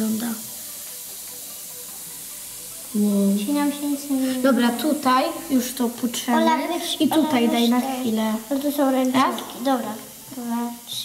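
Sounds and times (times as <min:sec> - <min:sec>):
fizzing hiss of dissolving ball: 0:00.0 - 0:11.0.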